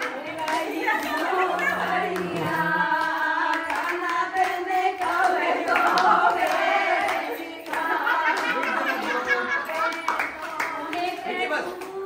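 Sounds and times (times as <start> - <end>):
group of voices singing: 0.0 - 12.0
hand clapping: 0.0 - 12.0
people chattering: 8.5 - 10.2.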